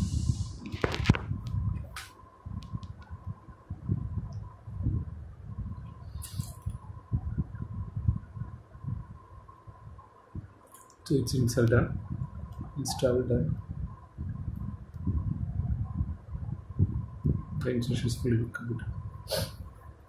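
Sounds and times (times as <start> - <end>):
phone microphone handling noise: 0.0 - 3.2
brief hiss: 6.2 - 6.6, 19.3 - 19.6.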